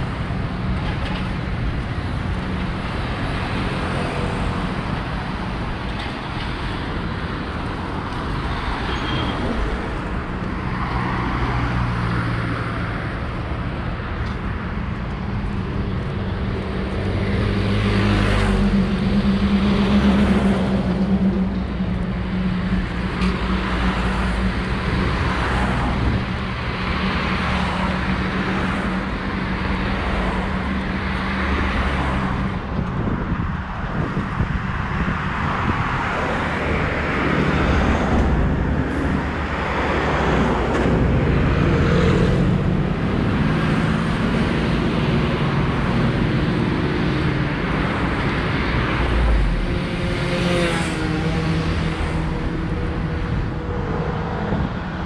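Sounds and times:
cars and buses passing: 0.0s - 55.0s.

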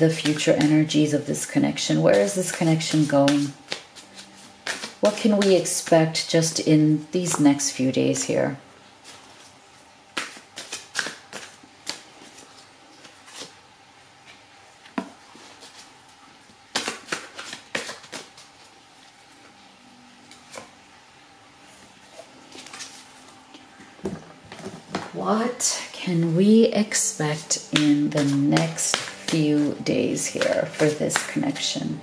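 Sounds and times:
cards shuffled and snapping: 0.1s - 0.7s, 2.1s - 5.9s, 10.1s - 13.6s, 16.7s - 18.7s, 27.7s - 31.8s.

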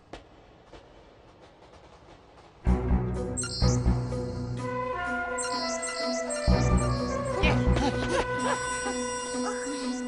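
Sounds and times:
footsteps on stone floor: 0.0s - 3.2s.

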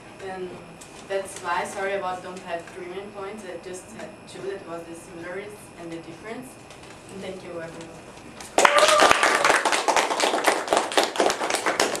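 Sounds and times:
audience applauding: 8.6s - 12.0s.

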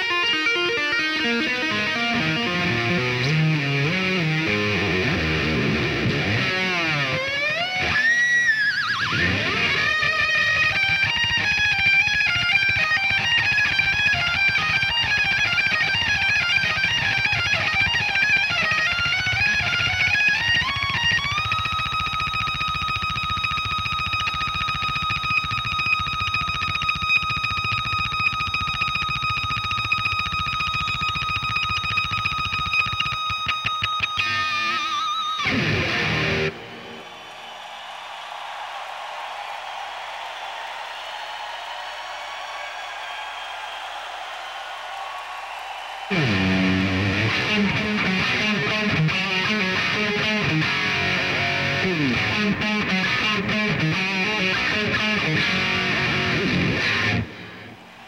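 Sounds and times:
distorted electric guitar: 0.0s - 37.0s, 46.1s - 58.0s.

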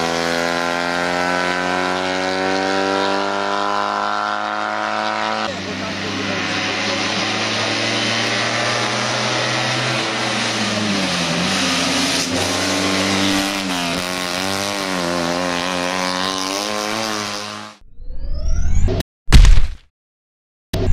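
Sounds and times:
car engine revving high: 0.0s - 17.8s.

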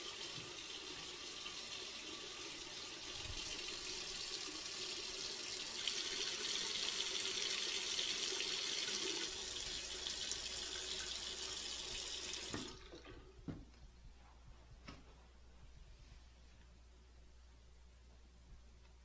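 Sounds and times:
tap running into sink: 11.9s - 13.7s.

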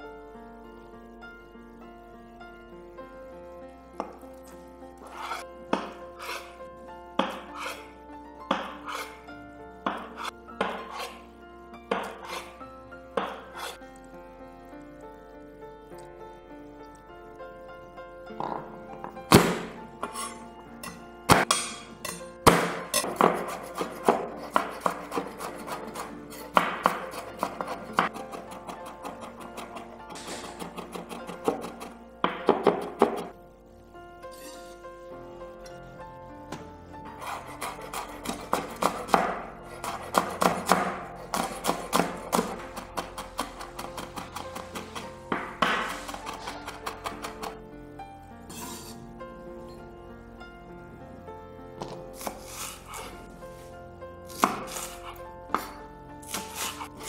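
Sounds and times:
knife chopping on cutting board: 7.2s - 7.8s, 8.5s - 9.1s, 9.9s - 11.2s, 11.9s - 12.5s, 13.2s - 13.8s, 21.3s - 33.3s, 37.2s - 47.6s, 51.8s - 53.1s, 54.3s - 55.7s, 56.3s - 56.9s.

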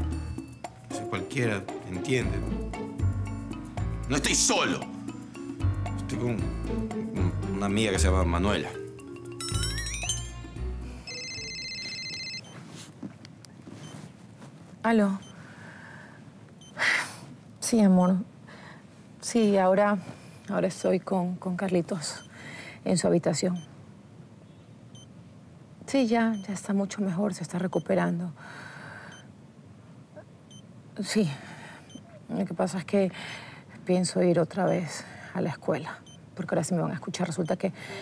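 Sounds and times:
faint room hiss: 0.0s - 38.0s
mobile phone ringing: 8.8s - 12.8s
patient monitor beeping: 11.0s - 12.7s, 16.6s - 16.8s, 23.5s - 23.7s, 26.3s - 26.7s, 31.8s - 32.2s, 36.0s - 36.3s, 37.2s - 38.0s.

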